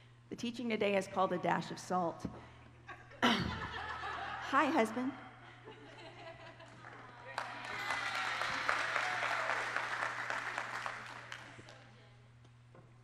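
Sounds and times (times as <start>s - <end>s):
audience applauding: 6.8s - 11.7s.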